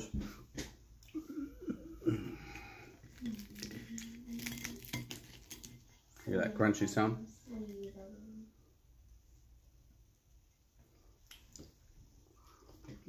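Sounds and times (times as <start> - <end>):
fried chicken crust crunching: 3.1 - 5.8.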